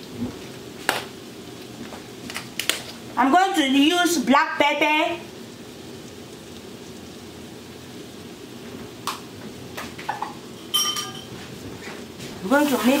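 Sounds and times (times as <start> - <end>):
butter sizzling in a frying pan: 0.0 - 13.0
ringing metallic clink: 10.6 - 11.3.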